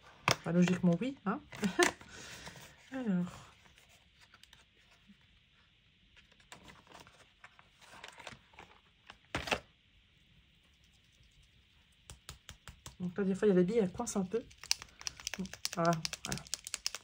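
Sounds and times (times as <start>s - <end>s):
plastic marker clicks and taps: 14.5s - 17.0s.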